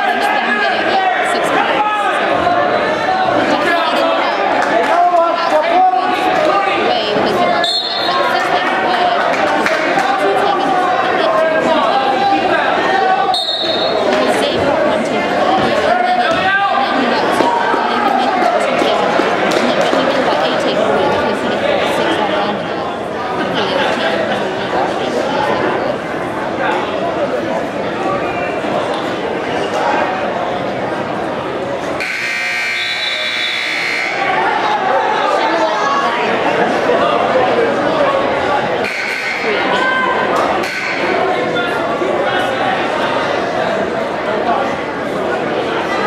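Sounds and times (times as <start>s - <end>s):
crowd chatter: 0.0s - 46.0s
referee's whistle blast: 7.6s - 8.2s, 13.3s - 14.0s, 32.0s - 34.2s
scoreboard buzzer high tone: 13.4s - 14.0s, 32.0s - 34.3s, 38.8s - 39.5s.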